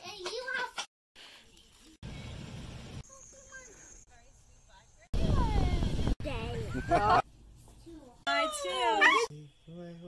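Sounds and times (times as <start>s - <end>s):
wind buffeting microphone: 5.1s - 7.0s.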